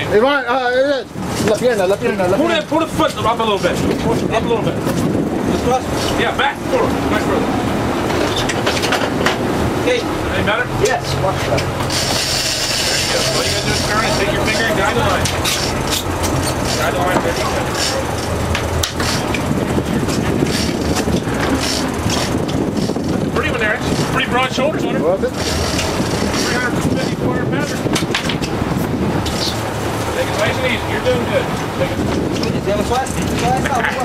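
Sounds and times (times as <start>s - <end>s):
boat engines droning: 0.0s - 34.0s
wind and sea noise: 0.0s - 34.0s
sharp clicks and knocks: 15.2s - 23.0s, 27.7s - 28.6s.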